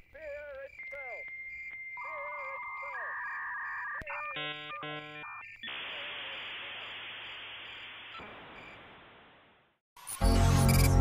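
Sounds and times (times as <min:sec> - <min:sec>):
warbling chirps: 0:00.8 - 0:08.8
electronic bleeps and tones: 0:02.0 - 0:07.0.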